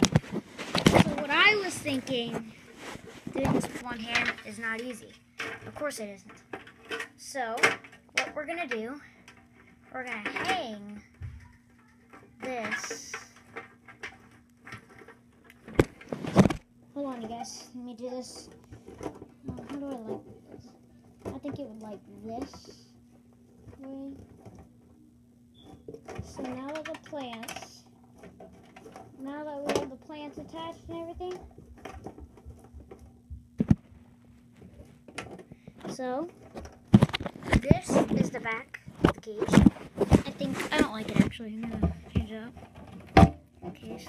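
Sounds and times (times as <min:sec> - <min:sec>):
faint clicks and rustles: 0:00.0 - 0:44.0
faint low hum: 0:00.0 - 0:44.0.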